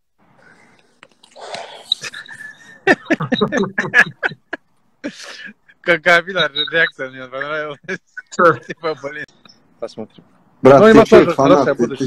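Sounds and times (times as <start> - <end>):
men laughing: 2.0 - 9.4.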